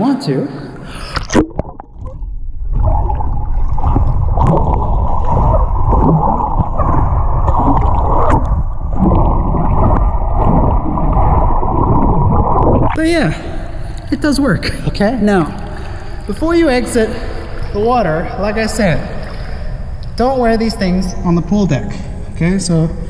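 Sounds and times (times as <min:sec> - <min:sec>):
muffled underwater rush and bubbling: 0:01.2 - 0:21.5.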